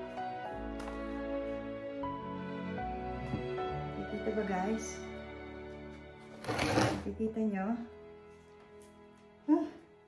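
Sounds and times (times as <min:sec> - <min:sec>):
background music sustained tones: 0:00.0 - 0:10.0
hands scraping potting soil: 0:06.3 - 0:07.1.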